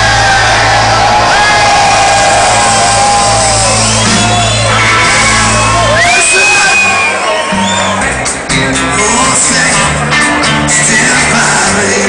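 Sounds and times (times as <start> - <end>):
crowd shouting and cheering: 0.0 - 12.0
live band music over speakers: 0.0 - 12.0.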